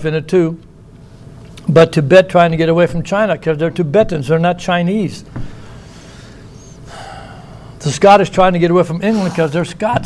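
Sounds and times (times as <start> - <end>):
man breathing in: 5.4 - 7.8
man speaking: 7.8 - 10.0.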